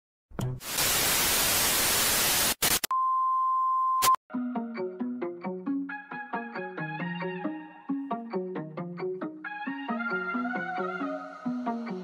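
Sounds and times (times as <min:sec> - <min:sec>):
loud static hiss: 0:00.6 - 0:02.9.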